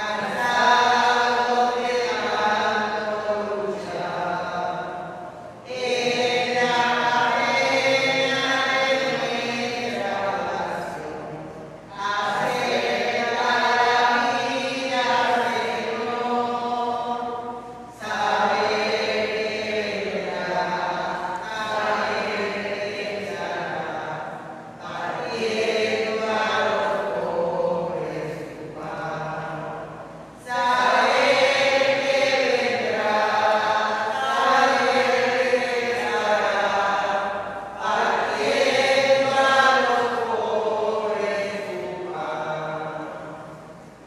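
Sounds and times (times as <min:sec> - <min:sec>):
congregation singing a hymn: 0:00.0 - 0:44.0.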